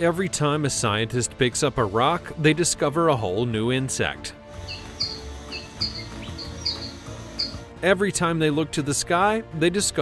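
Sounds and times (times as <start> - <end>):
soft background music: 0.0 - 10.0
high bird-like chirps: 4.6 - 7.6.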